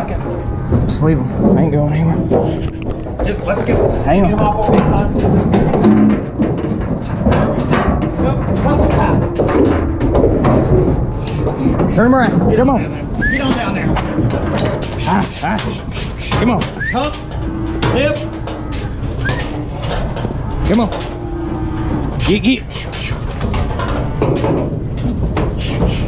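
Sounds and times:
steady low tone: 0:00.0 - 0:05.7
cattle hooves on metal floor: 0:00.0 - 0:26.0.

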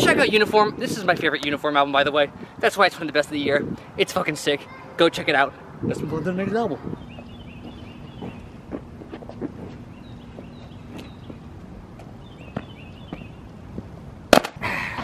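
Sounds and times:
small birds chirping: 0:05.5 - 0:13.9
footsteps on asphalt: 0:06.8 - 0:14.0.

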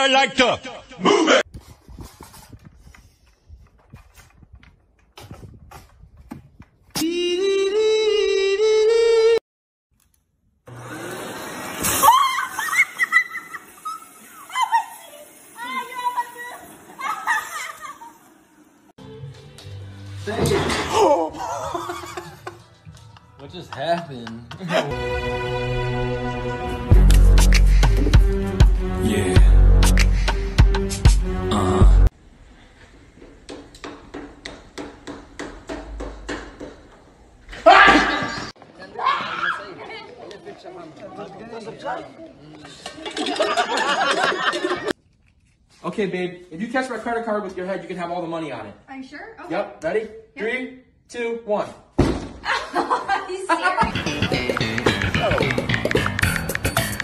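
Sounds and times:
woman squealing: 0:11.9 - 0:15.8.

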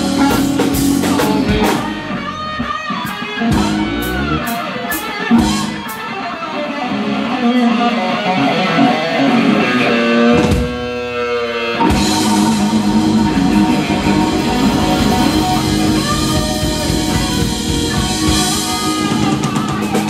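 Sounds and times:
blues-rock band playing: 0:00.0 - 0:20.0
electric guitar solo: 0:00.0 - 0:20.0.

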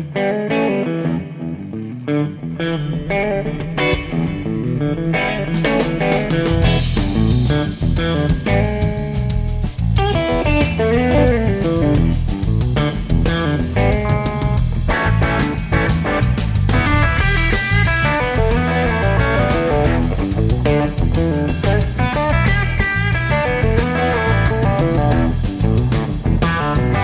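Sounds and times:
electric bass: 0:00.0 - 0:27.0
electric guitar riff: 0:00.0 - 0:27.0
drums and cymbals: 0:03.1 - 0:27.0.

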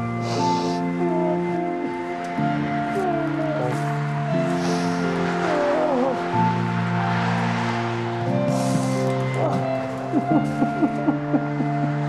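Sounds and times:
slow soft music: 0:00.0 - 0:12.0.

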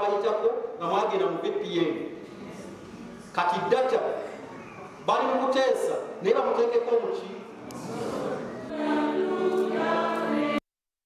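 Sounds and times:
group singing a hymn: 0:07.7 - 0:10.6.

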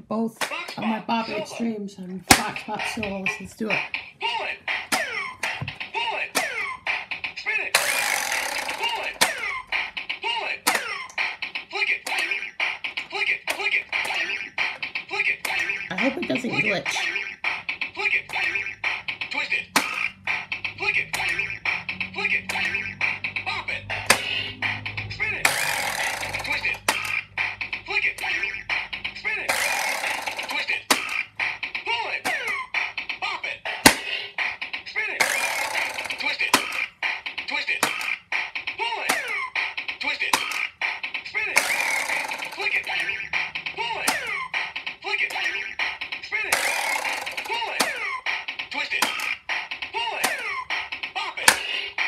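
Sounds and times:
electronic toy beat and effects: 0:00.5 - 0:52.0
toy button clicks: 0:07.8 - 0:09.5, 0:24.0 - 0:24.4, 0:25.4 - 0:27.2, 0:29.5 - 0:31.2, 0:35.2 - 0:36.9, 0:41.6 - 0:43.1, 0:46.5 - 0:48.0
electronic voice calling commands: 0:15.9 - 0:17.0.

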